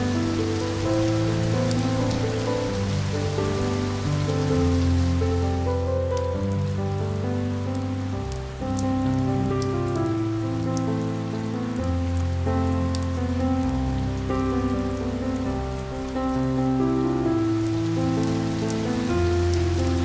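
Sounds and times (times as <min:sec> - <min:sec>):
rain drops ticking: 0:00.0 - 0:20.0
slow instrumental relaxation music: 0:00.0 - 0:20.0.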